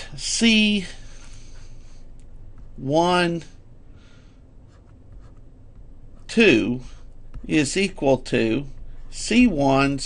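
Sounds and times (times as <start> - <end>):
stylus scratching on tablet: 4.6 - 10.0.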